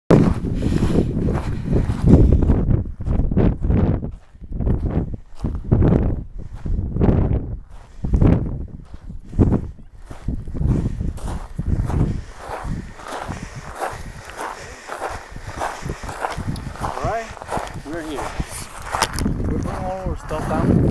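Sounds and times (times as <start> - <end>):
footsteps crunching on cinder: 8.8 - 20.9.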